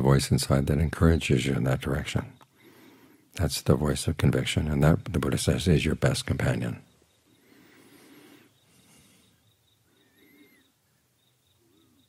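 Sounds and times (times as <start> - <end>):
faint chirping: 0.0 - 12.0
faint rising-and-falling call: 7.2 - 12.0.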